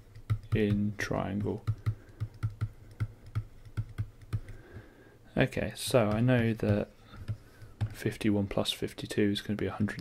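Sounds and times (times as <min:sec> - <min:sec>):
stylus clicking on drawing tablet: 0:05.8 - 0:08.6.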